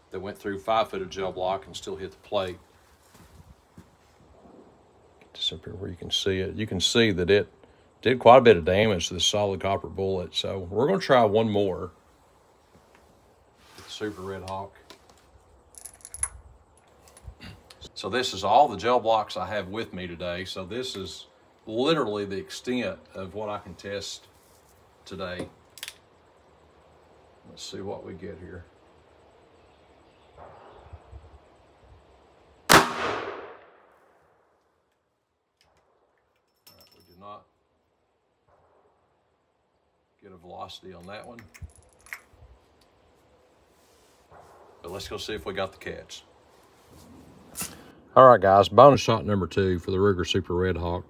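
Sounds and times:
revolver metallic clicks: 25.7 - 26.1
revolver gunshot: 30.4 - 30.9, 32.7 - 34.2, 44.3 - 44.9.

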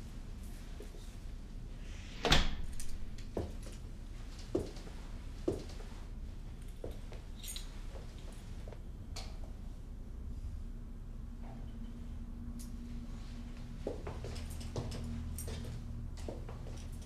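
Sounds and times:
low steady hum: 0.0 - 17.0
door closing: 2.2 - 3.4.

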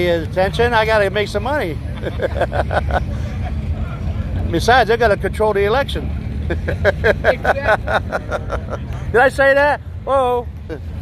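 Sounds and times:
car engines rumbling: 0.0 - 11.0.

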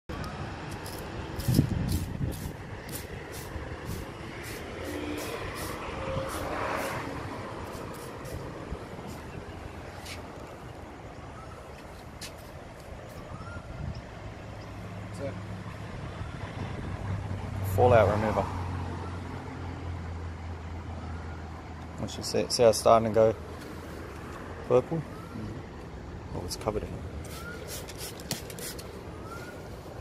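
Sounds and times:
spray bottle spritzing: 0.7 - 8.5, 27.2 - 29.0.

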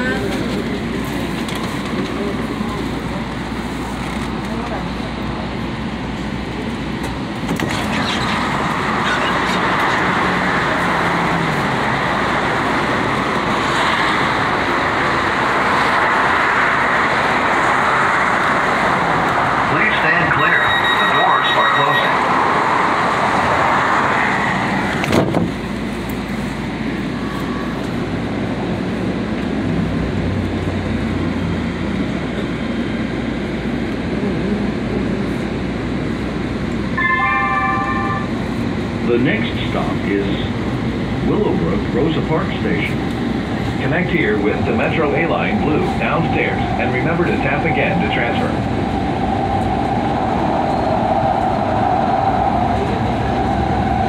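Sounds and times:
train running rushing noise: 0.0 - 54.0
brief high tone: 20.3 - 22.2, 36.9 - 38.4.

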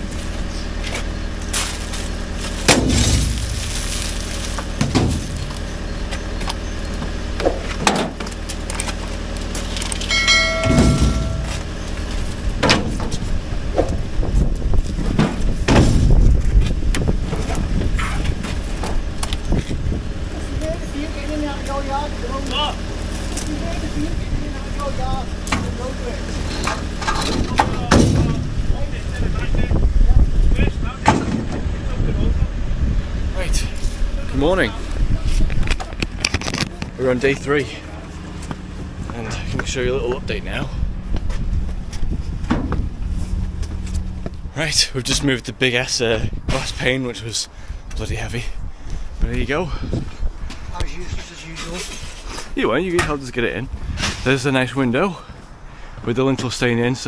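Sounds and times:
lorry engine running: 0.0 - 45.6
window frames crashing into metal skip: 2.6 - 4.1
glass breaking: 2.7 - 5.5, 10.0 - 11.7
short bell-like chime: 10.1 - 11.6.

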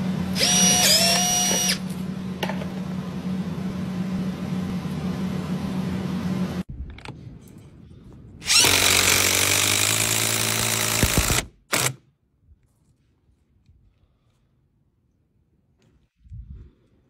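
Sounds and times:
small power tool motor: 0.3 - 1.9, 8.4 - 11.9
impact driver driving screw: 0.4 - 1.8, 8.4 - 12.0.

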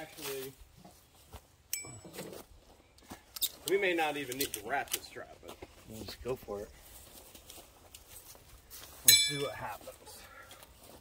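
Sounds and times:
metallic clink: 1.7 - 2.3, 9.1 - 9.5.

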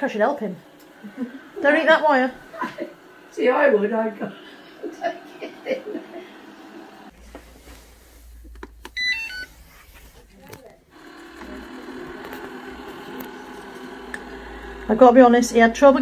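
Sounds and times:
robot vacuum hum: 0.0 - 16.0
robot vacuum beeping chime: 9.0 - 9.5.

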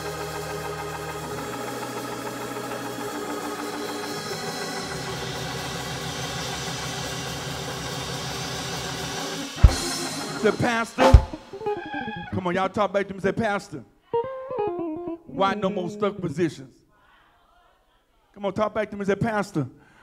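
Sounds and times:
held bass notes: 0.0 - 6.3, 9.6 - 12.6, 14.8 - 16.5
sustained keyboard chords: 0.0 - 12.5, 14.3 - 16.6
sharp drum hit: 9.5 - 11.7.

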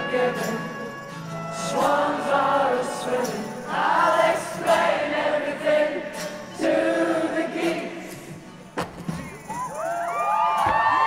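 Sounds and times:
crowd singing in chorus: 0.0 - 8.8
acoustic guitar: 0.0 - 11.0.

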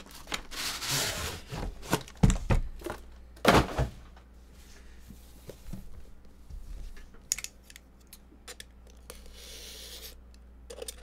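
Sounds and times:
plastic shrink wrap rustling: 0.0 - 2.4.

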